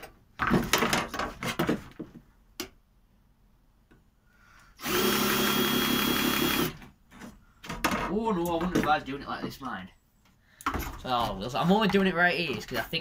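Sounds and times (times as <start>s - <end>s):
cordless drill running: 4.8s - 6.8s.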